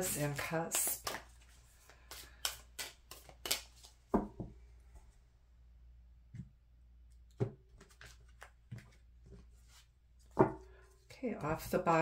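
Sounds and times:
cards being shuffled: 0.0 - 4.0, 7.7 - 9.9.

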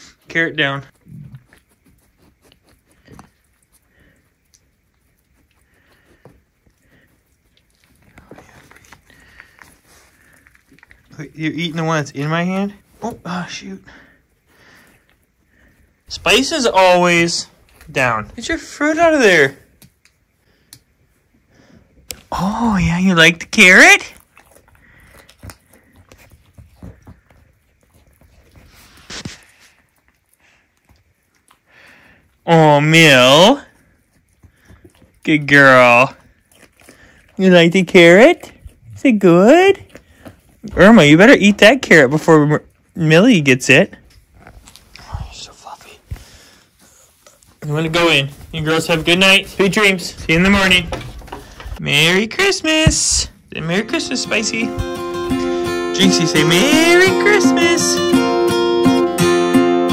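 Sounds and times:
goat chewing carrot: 0.0 - 59.9.

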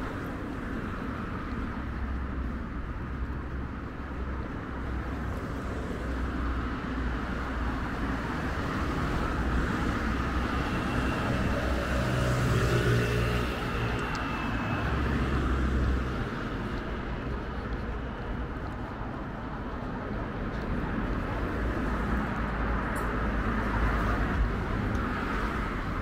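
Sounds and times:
steady low rumble of traffic: 0.0 - 26.0.

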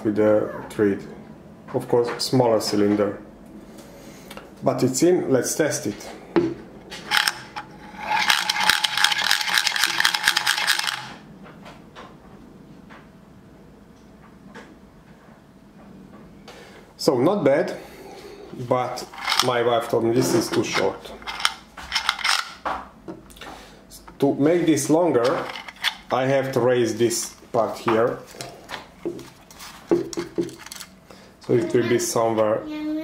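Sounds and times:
spinning top clicking rattle: 7.0 - 11.2, 19.0 - 19.6, 20.7 - 22.6, 25.2 - 26.2.

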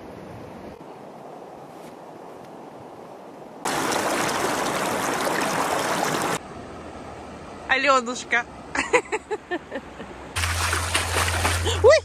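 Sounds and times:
feet splashing in shallow water: 10.4 - 12.0.

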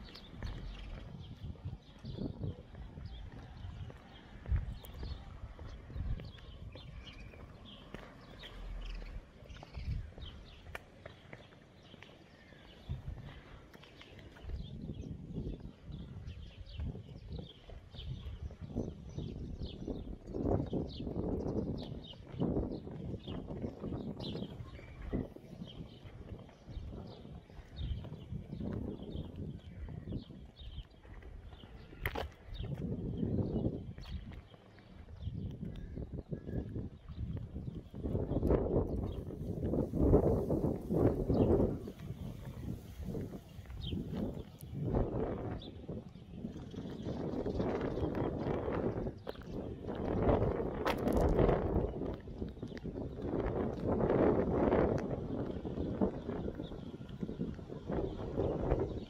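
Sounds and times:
small birds chirping: 0.0 - 50.7
footsteps on paving: 0.0 - 59.0
wind buffeting microphone: 0.0 - 59.0.

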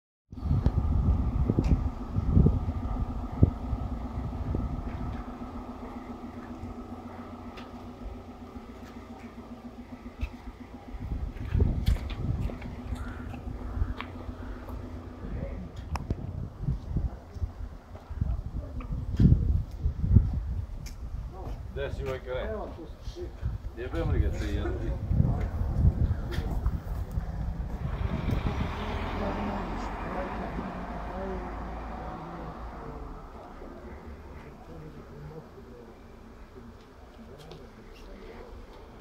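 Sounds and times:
low rumbling thumps: 0.3 - 32.0
engine-like hum: 0.3 - 39.0.

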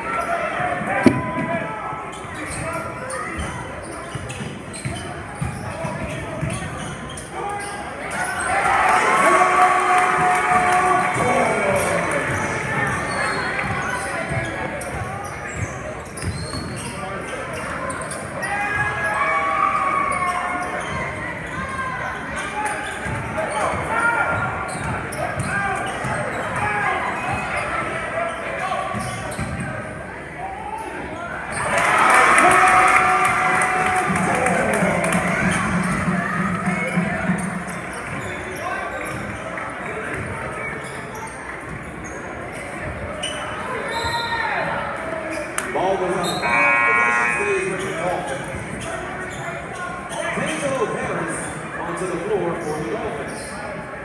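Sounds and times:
voices echoing in a hall: 0.0 - 54.0.

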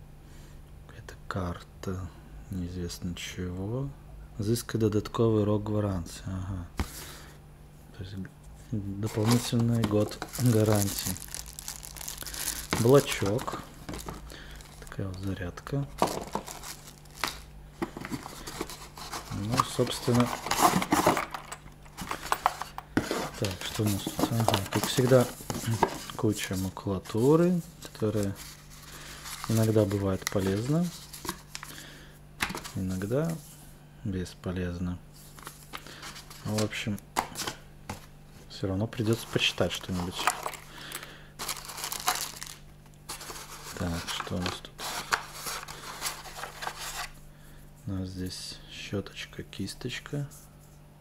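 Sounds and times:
cardboard packaging rustling: 9.0 - 31.7, 39.0 - 40.7, 41.4 - 47.2.

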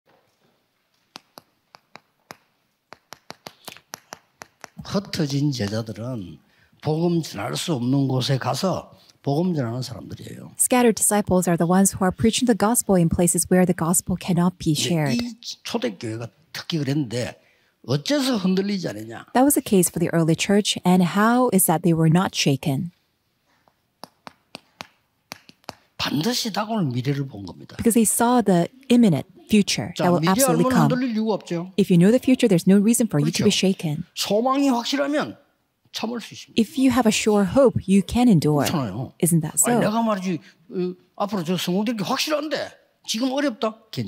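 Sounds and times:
chalk tapping on a chalkboard: 1.1 - 4.8, 24.0 - 25.9.

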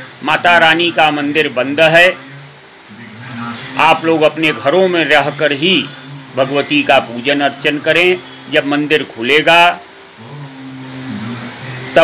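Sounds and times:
man humming in hesitation: 10.1 - 12.0.

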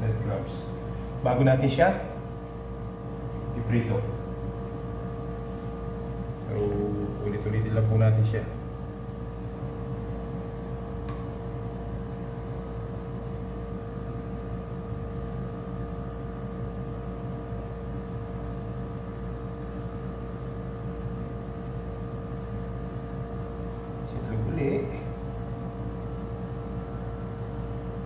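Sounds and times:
machine hum with steady tone: 0.0 - 28.0.

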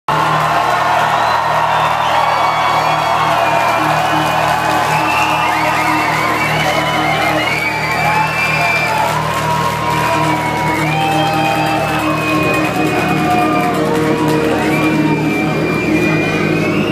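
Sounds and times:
crowd cheering and whooping: 0.1 - 16.9
live concert music: 0.1 - 16.9
low drone: 1.6 - 16.9.

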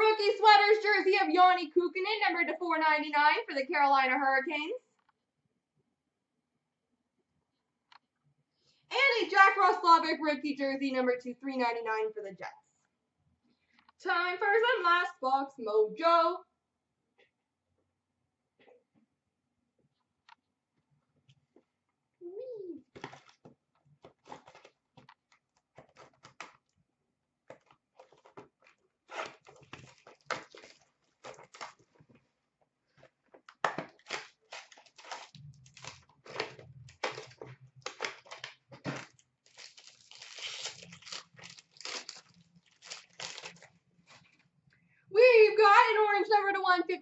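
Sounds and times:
cardboard and wrappers crinkling: 22.9 - 26.8, 27.4 - 44.5.

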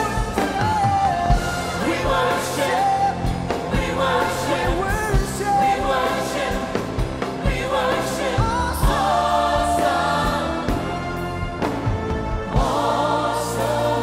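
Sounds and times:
drum kit beat: 0.0 - 14.0
live band playing: 0.0 - 14.0.

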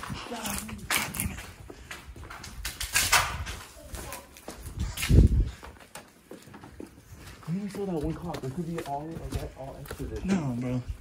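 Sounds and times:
footsteps crunching over debris: 0.0 - 11.0.

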